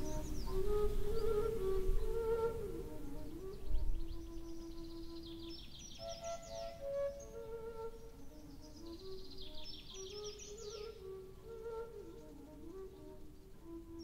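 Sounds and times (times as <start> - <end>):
soft flute-like melody: 0.0 - 14.0.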